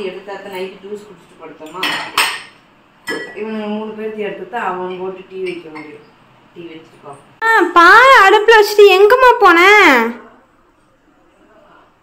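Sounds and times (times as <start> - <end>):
dishes and glasses clinking: 1.6 - 3.4, 5.4 - 6.2.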